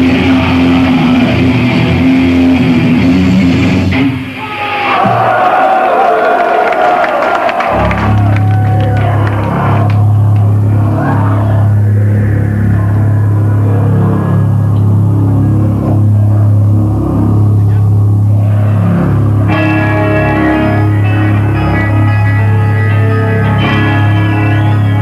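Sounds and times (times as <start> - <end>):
bass drone through speakers: 0.0 - 4.4, 7.6 - 25.0
faint crowd voices: 7.5 - 25.0.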